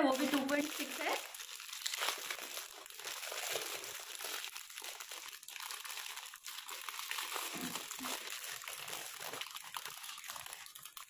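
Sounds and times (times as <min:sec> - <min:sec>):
plastic wrapping crinkling: 0:00.0 - 0:11.0.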